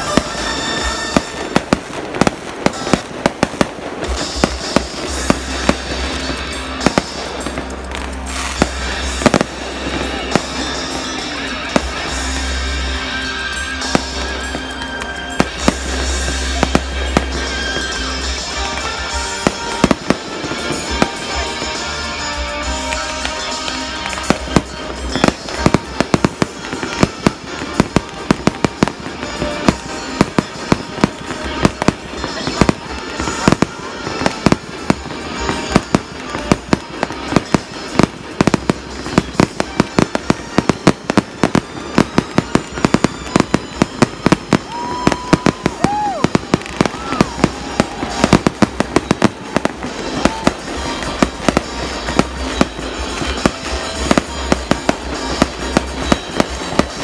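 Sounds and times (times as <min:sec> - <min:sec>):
fireworks bursting: 0:00.0 - 0:57.0
fireworks crackling: 0:00.0 - 0:57.0.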